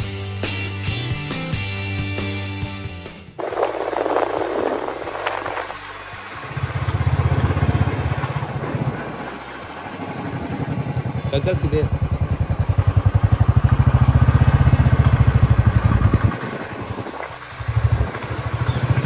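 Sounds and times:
background music with beat: 0:00.0 - 0:03.4
motorcycle engine on road: 0:03.1 - 0:19.0.

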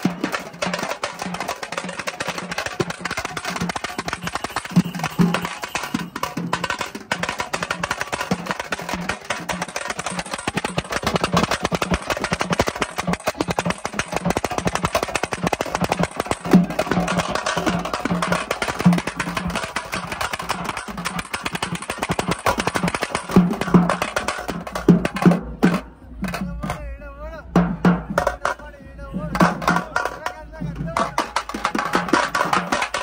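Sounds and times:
pulsing low drum beat: 0:00.0 - 0:26.8, 0:27.4 - 0:33.0
fast stick rhythm on side drums: 0:00.0 - 0:33.0.

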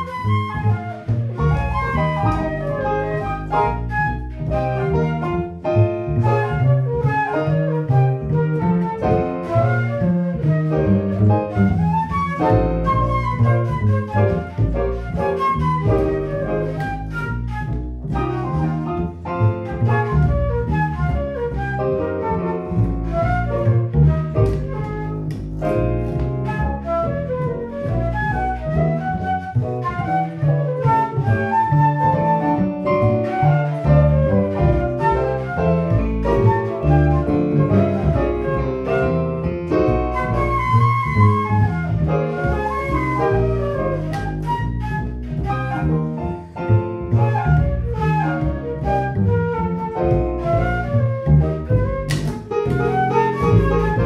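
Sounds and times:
digital piano: 0:00.0 - 0:54.0
flute playing quick melody: 0:00.0 - 0:54.0
upright double bass: 0:00.0 - 0:54.0.

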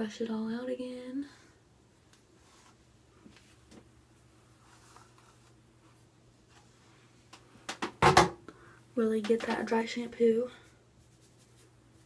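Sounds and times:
brush strokes through hair: 0:10.4 - 0:12.0.

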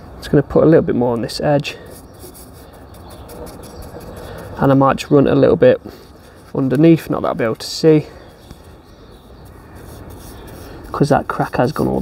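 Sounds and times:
outdoor background hiss: 0:00.0 - 0:12.0
paintbrush rubbing on wood: 0:01.8 - 0:12.0.

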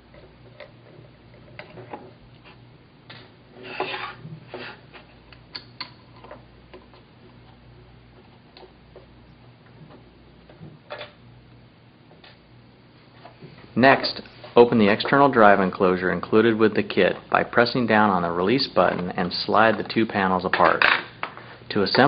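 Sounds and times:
faint steady hum: 0:00.0 - 0:22.0.

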